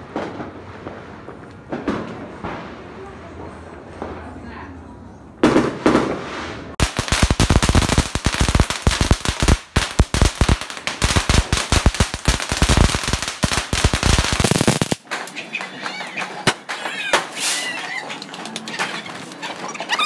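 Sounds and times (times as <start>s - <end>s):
firecrackers crackling: 0.0s - 4.4s, 5.4s - 19.6s.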